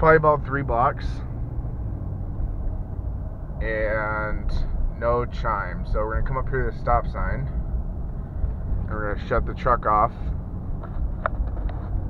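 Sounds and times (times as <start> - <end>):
engine and road rumble inside car: 0.0 - 12.0.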